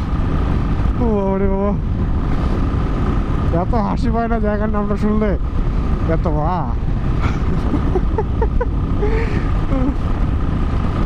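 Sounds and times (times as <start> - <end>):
motorcycle engine cruising: 0.0 - 11.0
wind rush: 0.0 - 11.0.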